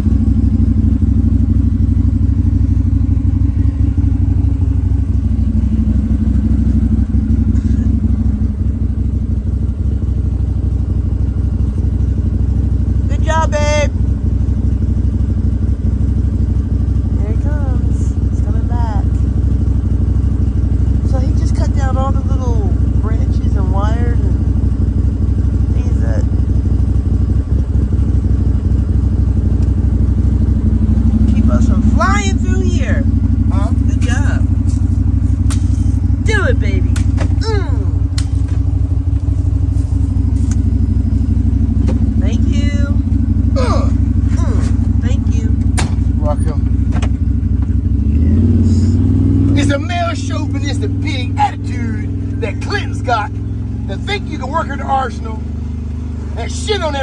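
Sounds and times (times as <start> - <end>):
utility vehicle engine droning: 0.0 - 57.0
body rattling clicks: 29.5 - 29.8.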